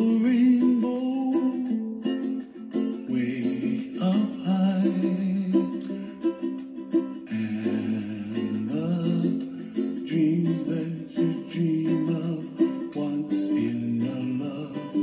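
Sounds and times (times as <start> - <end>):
gentle ukulele music: 0.0 - 15.0.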